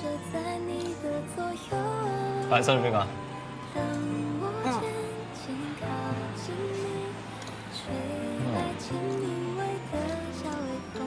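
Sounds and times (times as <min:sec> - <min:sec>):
person singing: 0:00.0 - 0:11.0
pop love song: 0:00.0 - 0:11.0.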